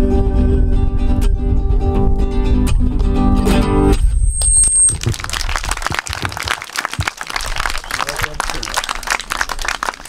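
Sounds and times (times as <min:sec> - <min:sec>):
small group clapping: 0:04.9 - 0:10.0.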